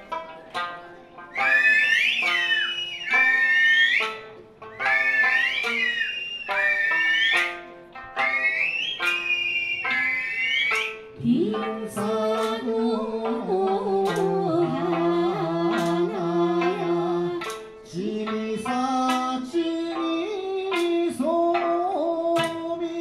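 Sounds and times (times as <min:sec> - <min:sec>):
plucked lute melody: 0:00.0 - 0:23.0
high whistled phrases: 0:01.3 - 0:07.6, 0:08.2 - 0:11.1.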